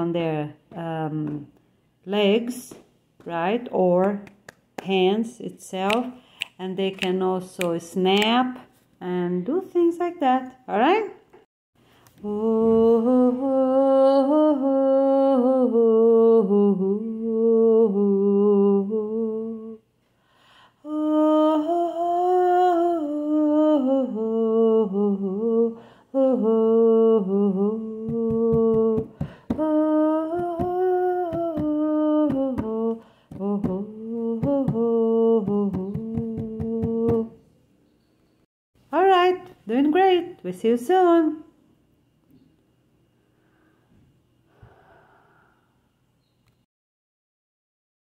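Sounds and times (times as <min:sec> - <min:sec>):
person humming a slow melody: 0:12.2 - 0:19.8, 0:20.8 - 0:37.4.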